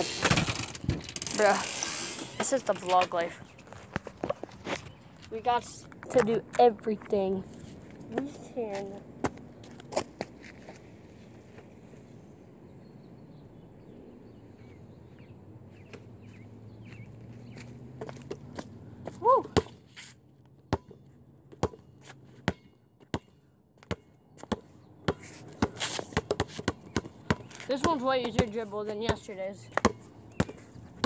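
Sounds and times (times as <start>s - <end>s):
basketball bouncing on concrete: 18.0s - 19.8s, 20.7s - 21.0s, 21.6s - 31.0s.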